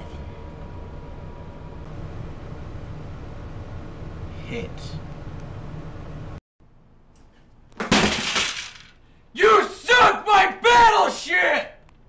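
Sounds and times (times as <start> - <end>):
loud crash: 7.8 - 8.9
young man yelling: 9.4 - 11.8.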